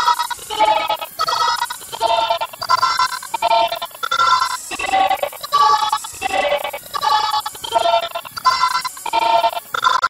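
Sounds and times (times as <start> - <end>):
electronically warped high-pitched voice: 0.1 - 9.8.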